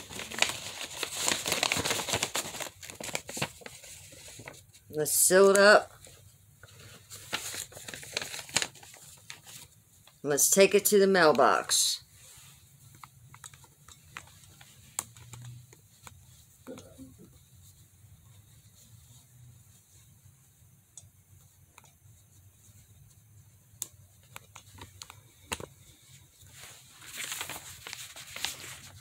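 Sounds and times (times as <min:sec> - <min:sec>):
fabric rubbing on microphone: 0:17.3 - 0:20.6.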